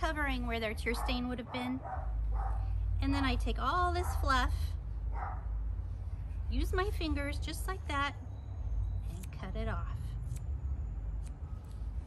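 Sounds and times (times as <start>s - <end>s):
scissors snipping fur: 9.0s - 9.6s, 10.2s - 10.6s, 11.2s - 12.0s.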